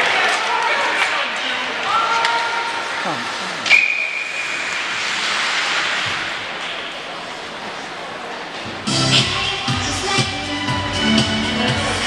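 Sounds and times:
rink and crowd noise hiss: 0.0 - 12.0
referee's whistle blast: 3.7 - 4.5.

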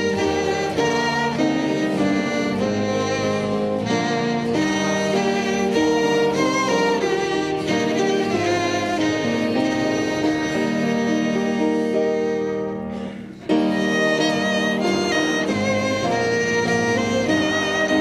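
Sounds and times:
slow hymn tune with sustained chords: 0.0 - 18.0.

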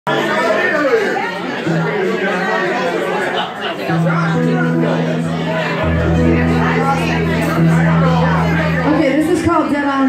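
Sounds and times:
people chattering in echoing room: 0.1 - 10.0.

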